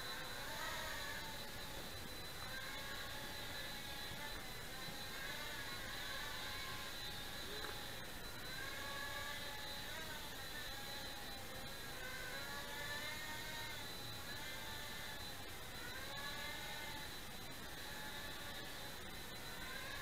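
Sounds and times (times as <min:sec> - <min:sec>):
quadcopter motors whining: 0:00.0 - 0:20.0.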